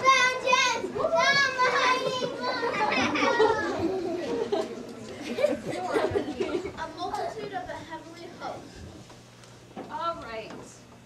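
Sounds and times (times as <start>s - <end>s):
children calling out loudly: 0.0s - 3.8s.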